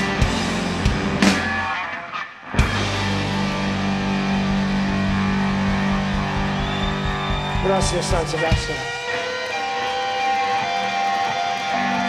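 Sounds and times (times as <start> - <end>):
electric guitars sustained chord: 2.6 - 12.0.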